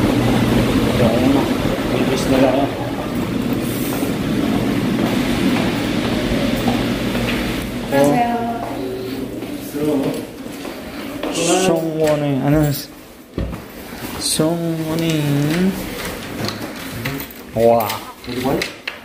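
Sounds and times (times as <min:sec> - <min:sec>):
men talking: 0:00.8 - 0:03.1, 0:07.9 - 0:13.0, 0:14.1 - 0:15.9, 0:16.9 - 0:18.7.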